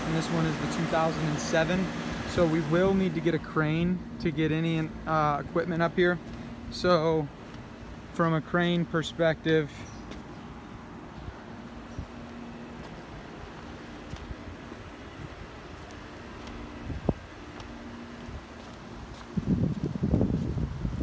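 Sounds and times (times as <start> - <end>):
wind buffeting microphone: 14.1 - 21.0.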